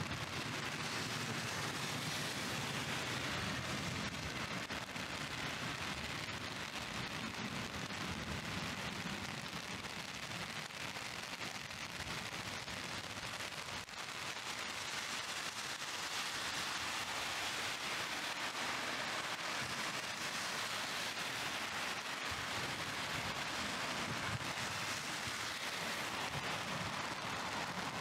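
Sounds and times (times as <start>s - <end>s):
heavy rain hiss: 0.0s - 28.0s.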